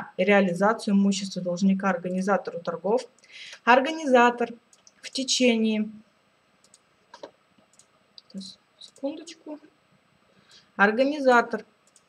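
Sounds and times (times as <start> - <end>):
faint computer mouse clicks: 4.7 - 5.0, 6.6 - 9.0.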